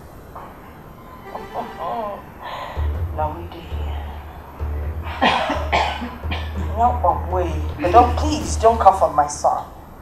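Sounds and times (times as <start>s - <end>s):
background music: 0.0s - 10.0s
woman speaking: 1.3s - 2.3s, 7.6s - 9.7s
woman coughing: 5.2s - 6.6s.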